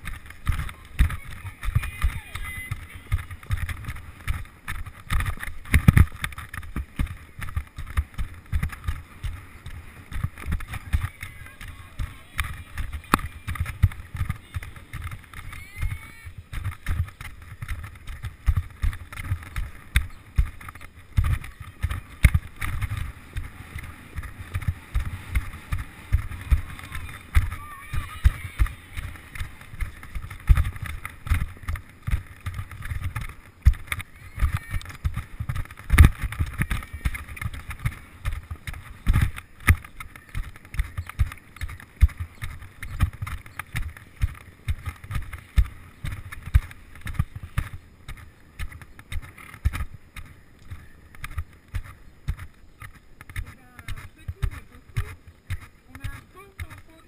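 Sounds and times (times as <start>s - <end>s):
horse hoofbeats on sand: 0.0s - 57.0s
wind hiss over microphone: 0.0s - 57.0s.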